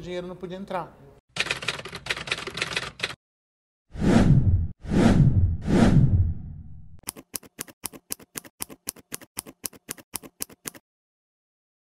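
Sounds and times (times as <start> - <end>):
scissors snipping: 7.0 - 10.8.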